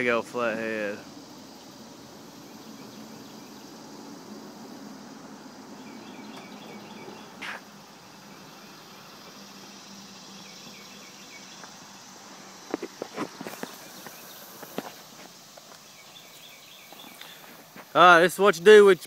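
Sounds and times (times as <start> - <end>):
faint chirping: 0.0 - 19.0
footsteps on concrete: 7.4 - 7.7, 12.6 - 15.8.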